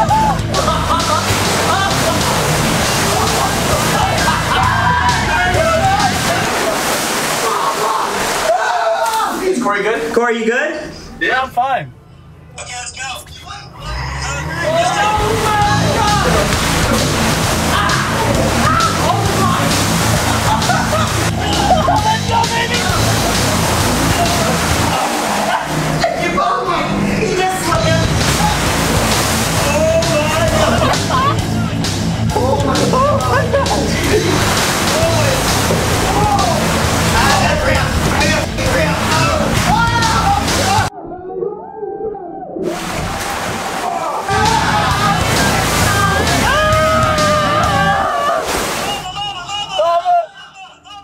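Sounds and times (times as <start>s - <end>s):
background music with bass line: 0.0s - 6.5s, 14.5s - 26.2s, 27.7s - 40.9s, 44.3s - 48.3s
people shrieking: 0.0s - 6.7s, 13.8s - 23.3s, 23.9s - 26.7s, 32.4s - 42.8s, 43.8s - 51.0s
water balloons sloshing across floor: 0.0s - 9.4s, 14.7s - 40.9s, 42.7s - 49.0s
voices shouting: 0.0s - 9.6s, 13.8s - 41.7s, 42.6s - 51.0s.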